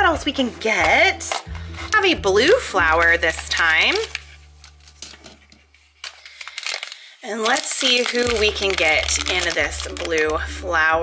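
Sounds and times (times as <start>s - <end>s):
plastic packaging clicks and rustles: 1.2s - 10.4s.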